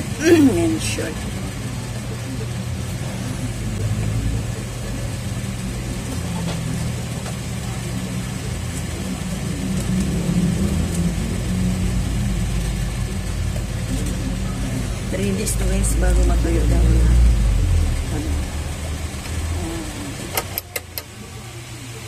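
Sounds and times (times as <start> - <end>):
low engine-like hum: 0.0 - 22.0.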